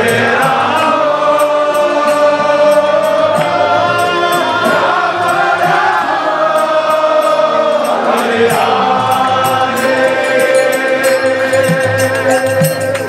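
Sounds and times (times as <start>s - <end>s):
hand drums: 0.0s - 13.0s
harmonium chords: 0.0s - 13.0s
small percussion: 0.0s - 13.0s
voices chanting a mantra: 0.0s - 13.0s.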